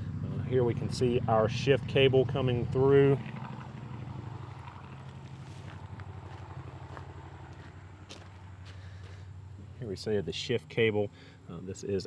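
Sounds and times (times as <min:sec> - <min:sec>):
small car engine idling: 0:00.0 - 0:12.0.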